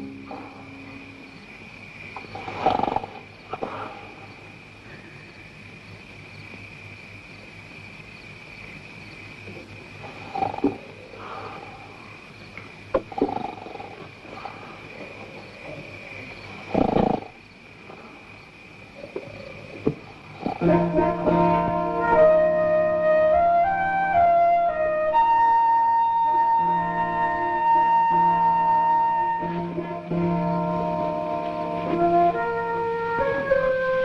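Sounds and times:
old film soundtrack hiss: 0:00.0 - 0:34.0
pig grunting: 0:02.2 - 0:04.2, 0:10.0 - 0:11.9, 0:13.0 - 0:17.4, 0:20.1 - 0:20.8
animal calling: 0:13.0 - 0:17.4.

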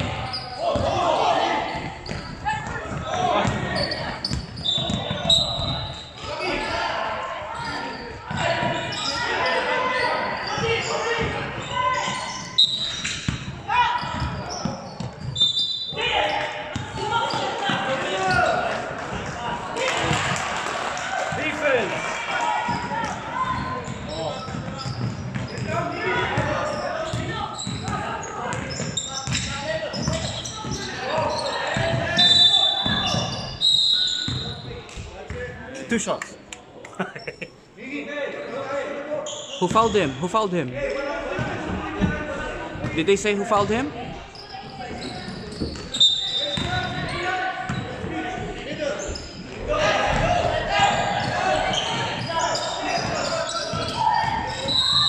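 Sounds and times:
voices in echoing gym: 0:00.0 - 0:55.0
referee whistle blasts: 0:32.2 - 0:34.6, 0:45.9 - 0:46.6
basketball bouncing on hardwood: 0:46.6 - 0:46.8.

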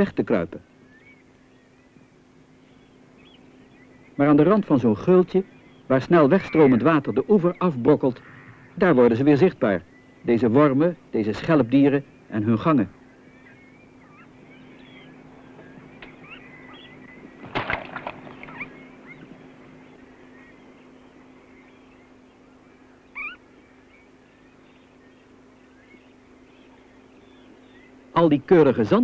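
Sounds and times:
distant birds chirping: 0:00.0 - 0:29.0
faint steady hum: 0:00.0 - 0:29.0.

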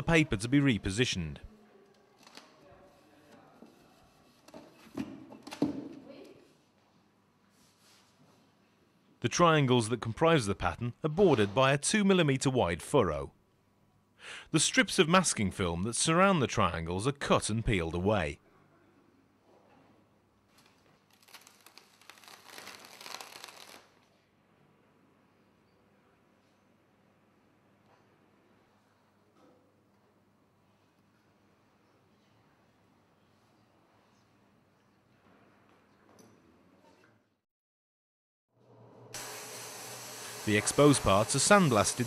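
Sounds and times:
paper peeling from adhesive film: 0:20.6 - 0:24.0
sandblasting gun hissing: 0:39.2 - 0:42.0.

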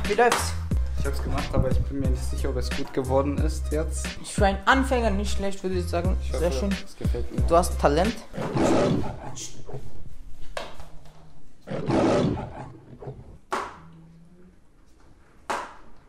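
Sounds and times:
lion roaring: 0:08.3 - 0:10.0, 0:11.6 - 0:13.5.

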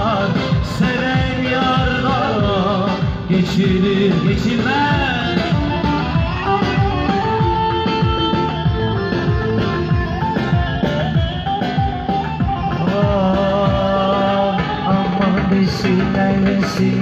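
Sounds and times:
acoustic guitar: 0:00.0 - 0:17.0
keyboard playing a melody: 0:00.0 - 0:17.0.

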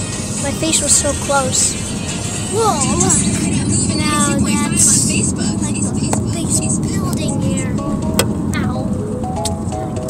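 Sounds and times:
road rumble inside moving car: 0:00.0 - 0:10.0
child speaking: 0:00.4 - 0:01.7, 0:02.5 - 0:07.8.

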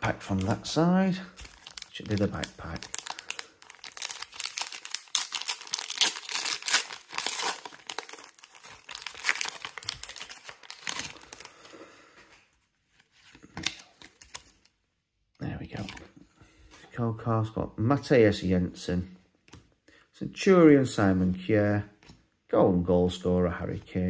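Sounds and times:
foil wrapper crinkling: 0:01.3 - 0:11.7.

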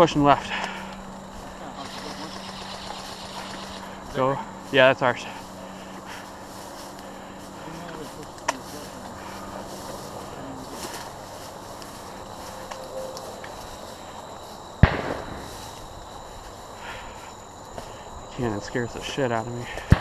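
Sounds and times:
footsteps through dry grass: 0:00.4 - 0:18.8.

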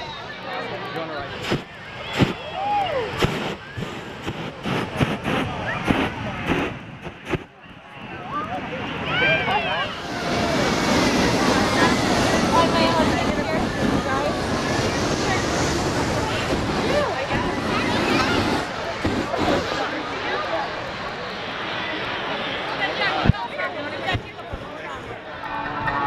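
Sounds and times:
crowd voices: 0:00.0 - 0:26.0
propane burner rushing: 0:01.0 - 0:25.1.

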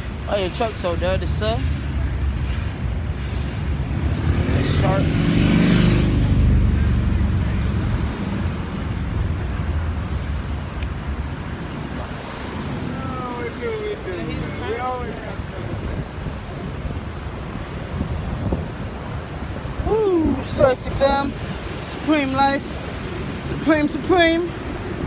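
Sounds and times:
city street traffic: 0:00.0 - 0:25.0
vehicle passing: 0:03.1 - 0:16.4.

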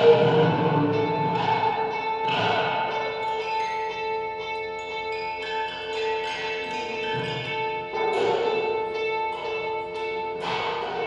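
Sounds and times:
experimental ensemble music: 0:00.0 - 0:11.0.

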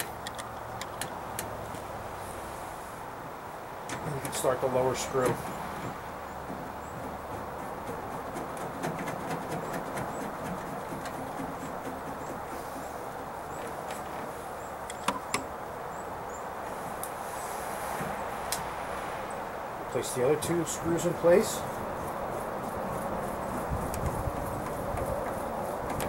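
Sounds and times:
small clicks and taps: 0:00.0 - 0:01.8
outdoor background noise: 0:00.0 - 0:26.0.

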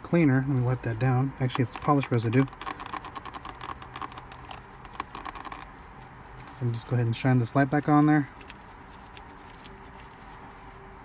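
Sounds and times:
towel rubbing plastic: 0:01.5 - 0:05.7.

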